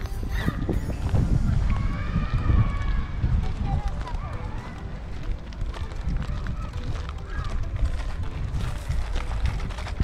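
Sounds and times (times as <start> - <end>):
footsteps: 0.0 - 10.0
camera handling rumble: 5.2 - 10.0.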